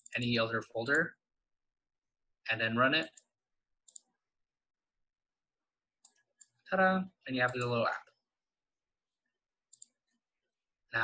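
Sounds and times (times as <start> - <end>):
computer mouse double-click: 9.7 - 10.0.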